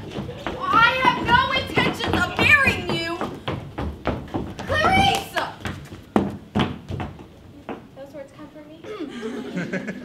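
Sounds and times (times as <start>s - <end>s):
footsteps on stage floor: 0.0s - 8.2s.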